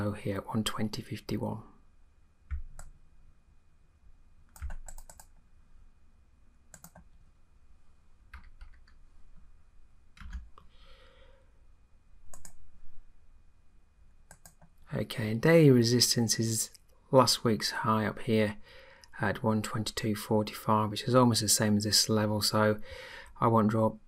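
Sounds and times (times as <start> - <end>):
computer keyboard typing: 4.5 - 5.4, 6.7 - 7.1, 8.3 - 9.0, 10.2 - 10.6, 12.3 - 12.6, 14.3 - 14.7
mouse clicks: 4.5 - 5.4, 6.7 - 7.2, 12.3 - 12.6, 14.3 - 14.8.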